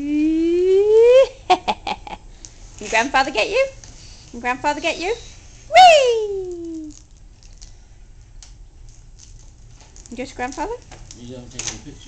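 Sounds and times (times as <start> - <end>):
person whooing rising in pitch: 0.0 - 1.4, 5.7 - 7.0
laughter: 1.2 - 2.2.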